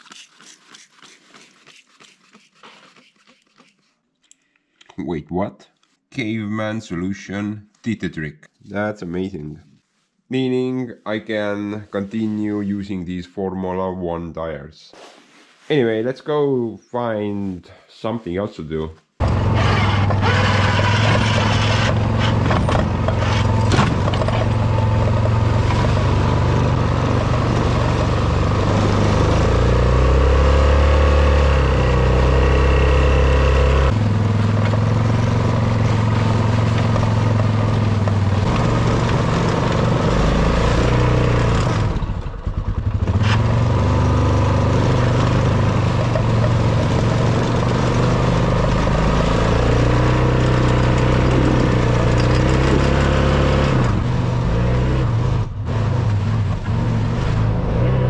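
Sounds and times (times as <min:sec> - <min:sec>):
atv engine running under load: 0:19.2 - 0:54.6
plow blade pushing snow: 0:19.2 - 0:58.0.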